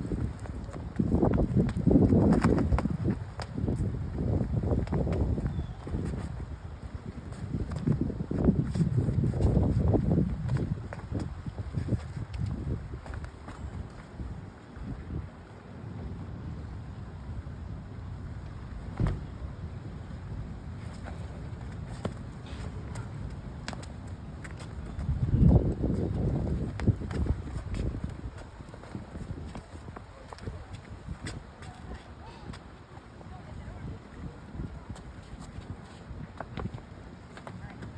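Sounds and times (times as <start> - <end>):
wind rumbling on microphone: 0.0 - 37.9.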